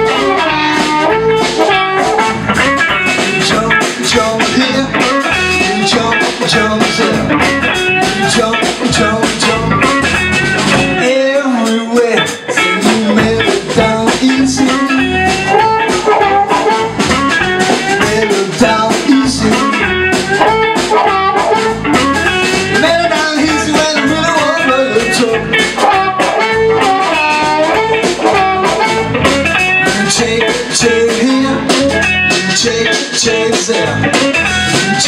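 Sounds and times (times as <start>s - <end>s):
upright double bass: 0.0s - 11.2s, 12.8s - 35.0s
electric guitar: 0.0s - 35.0s.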